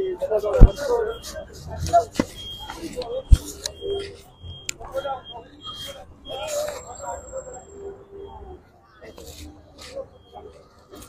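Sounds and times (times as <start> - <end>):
people's voices: 0.0 - 11.0
high electronic warning beeps: 0.4 - 11.0.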